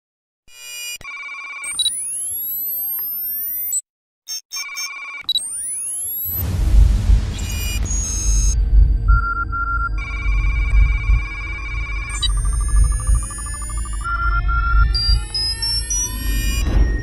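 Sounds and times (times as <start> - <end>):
short digital beeps: 0.5 - 6.4, 7.3 - 17.0
loud deep noisy swell: 6.3 - 17.0
rising whistling sweeps: 12.1 - 17.0.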